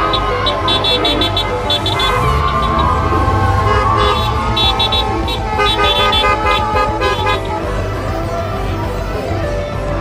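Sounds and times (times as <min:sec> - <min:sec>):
car horns honking: 0:00.0 - 0:07.8
street traffic: 0:00.0 - 0:10.0.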